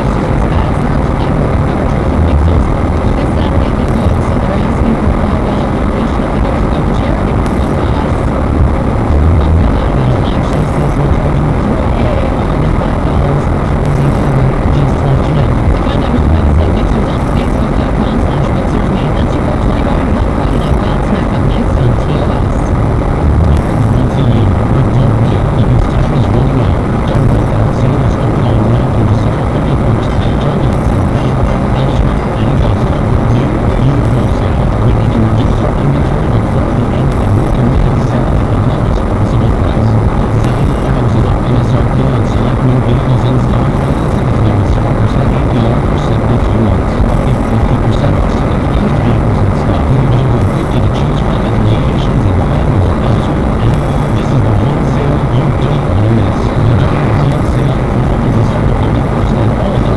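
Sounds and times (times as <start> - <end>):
car engine: 0.0 - 59.9.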